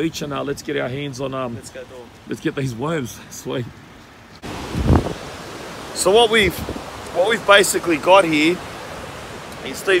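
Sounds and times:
wind buffeting microphone: 4.4 - 7.1
ocean surf rushing: 4.4 - 10.0.

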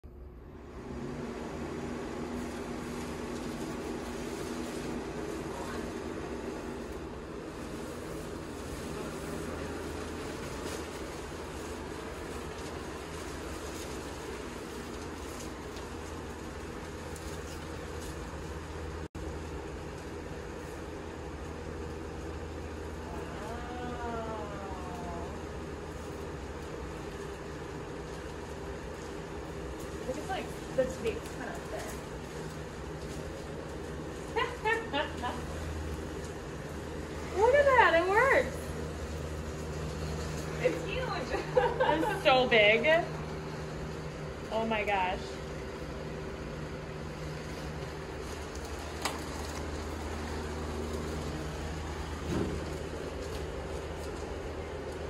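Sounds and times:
box fan running: 0.0 - 55.0
plastic sheeting rustling: 0.6 - 55.0.

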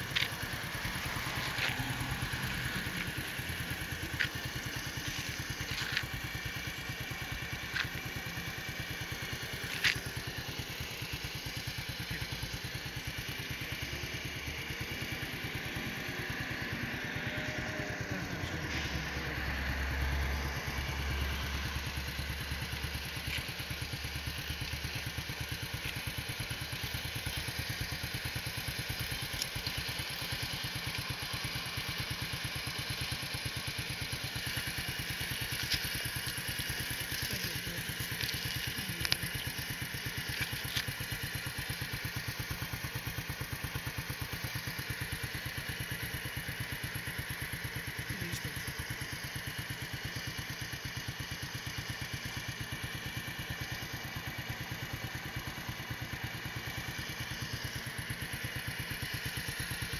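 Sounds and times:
engine idling: 0.0 - 59.9.

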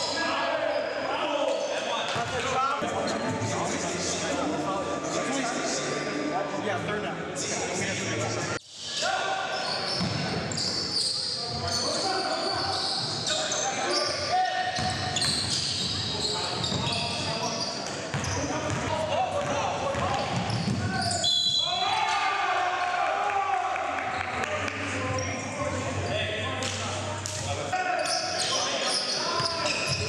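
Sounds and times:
players' voices echoing: 0.0 - 30.0
shoe squeaks: 8.8 - 18.8, 19.9 - 21.8, 27.9 - 30.0.

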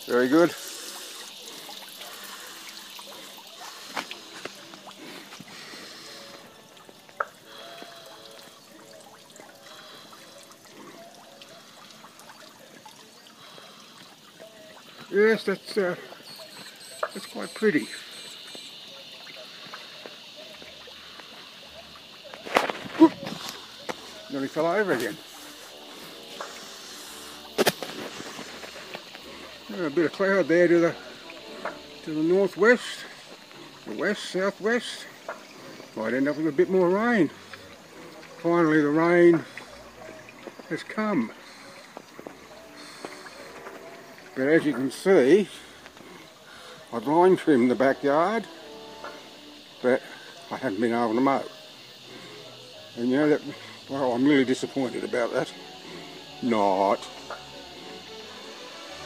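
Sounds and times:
small waterfall trickling into pond: 0.0 - 59.0.

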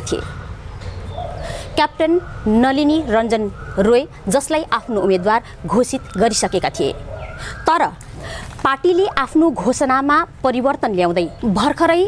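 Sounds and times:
woman speaking: 0.0 - 0.4, 1.5 - 12.0.

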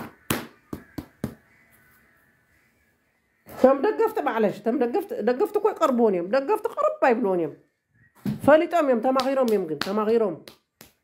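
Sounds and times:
sharp taps: 0.0 - 1.4.

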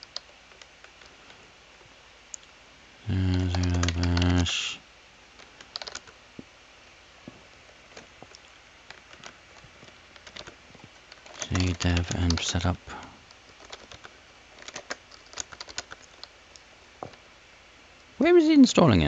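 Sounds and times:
typing on computer keyboard: 0.0 - 1.2, 3.3 - 4.5, 5.4 - 6.2, 8.9 - 12.8, 13.4 - 16.3
person's voice: 3.0 - 4.8, 11.4 - 13.2, 18.2 - 19.0.

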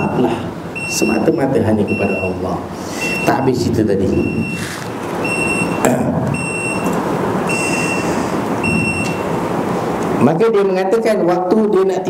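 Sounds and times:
electronic beep: 0.0 - 2.4, 3.0 - 4.6, 5.2 - 6.9, 7.5 - 9.3
background noise: 0.0 - 12.0.

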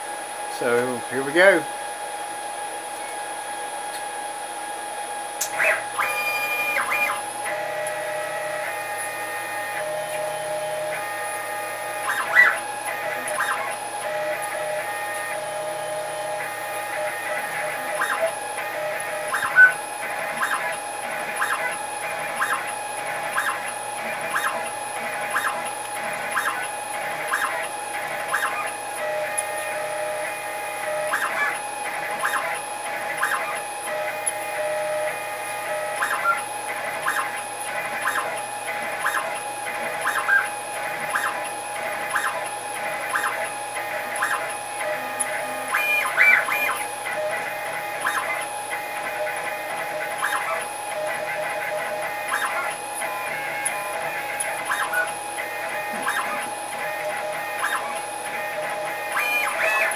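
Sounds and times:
steady machine whine: 0.0 - 59.9
stepper motors singing: 5.4 - 59.9.

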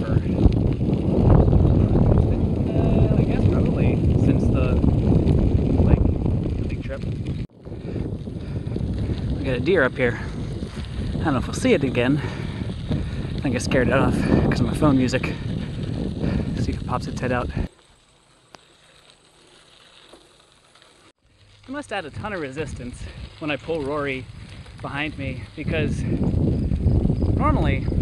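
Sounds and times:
wind buffeting microphone: 0.0 - 17.8, 22.0 - 28.0
bicycle tyres rumbling on pavement: 0.0 - 28.0.

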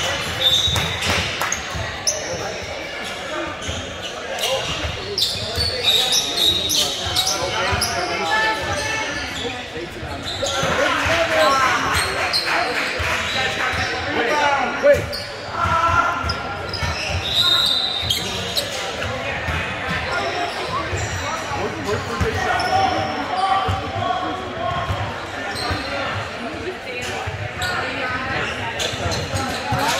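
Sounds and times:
people talking: 0.0 - 29.9.

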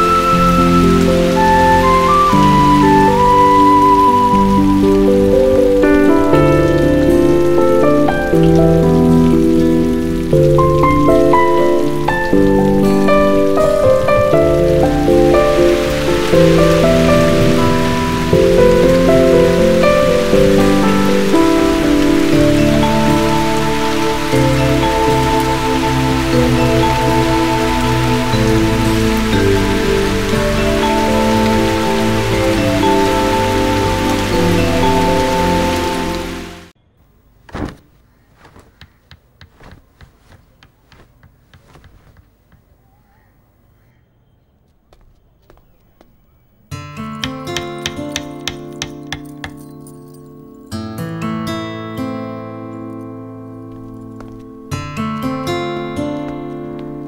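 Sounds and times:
heavy rain hiss: 0.0 - 36.7
melodic film score: 0.0 - 36.7, 47.0 - 57.0.

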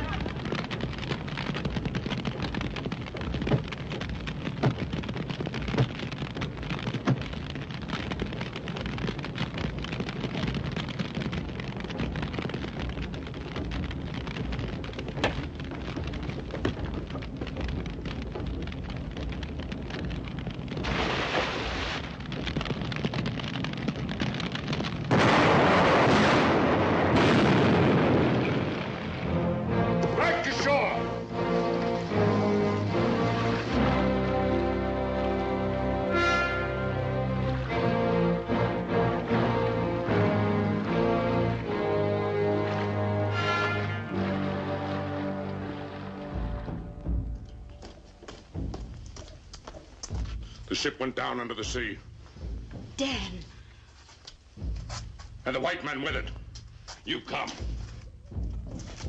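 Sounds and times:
burst of noise: 0.0 - 50.8
fire rumbling: 0.0 - 59.0
sharp cracks: 0.0 - 59.0
loud explosion blast: 20.7 - 31.4.

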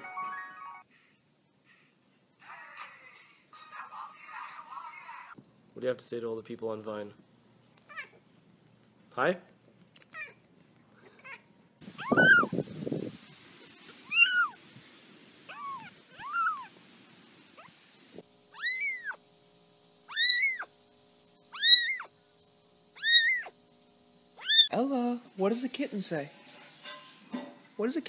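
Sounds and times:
kitten mewing: 11.0 - 12.6, 14.0 - 14.6, 15.5 - 16.7, 18.6 - 19.2, 20.1 - 20.7, 21.5 - 22.1, 23.0 - 23.5, 24.4 - 24.8.

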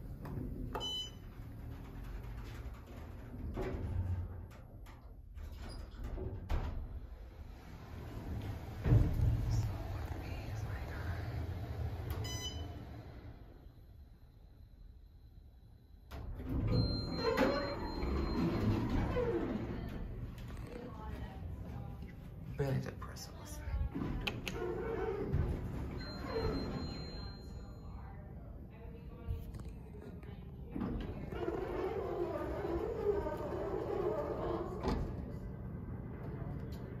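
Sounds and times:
elevator running rumble: 0.0 - 14.6, 15.5 - 22.5, 23.6 - 29.2, 30.5 - 37.0
elevator doors sliding open: 0.2 - 10.6, 11.2 - 13.6, 16.1 - 20.7, 23.9 - 27.6, 30.7 - 37.0
elevator doors knocking shut: 8.0 - 9.6
door operator hum: 30.7 - 37.0.

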